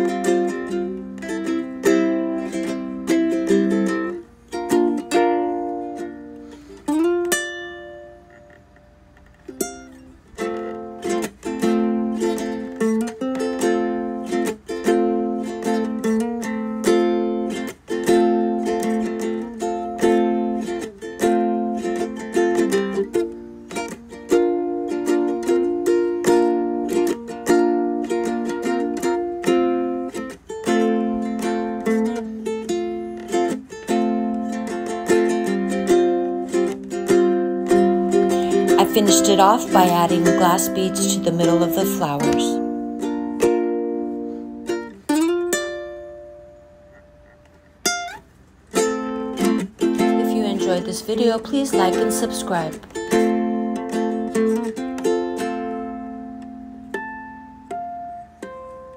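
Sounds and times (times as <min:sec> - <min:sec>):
strummed plucked strings music: 0:00.0 - 0:58.9.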